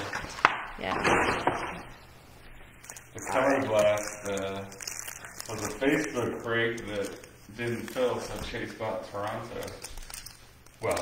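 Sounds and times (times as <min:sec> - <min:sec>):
person speaking: 0:03.0 - 0:10.0, 0:10.7 - 0:11.0.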